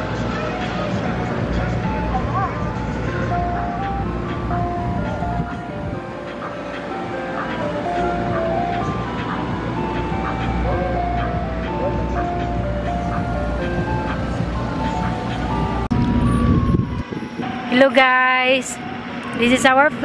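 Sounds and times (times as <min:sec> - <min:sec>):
ice cream truck chime melody: 0:00.0 - 0:20.0
truck engines idling: 0:00.0 - 0:20.0.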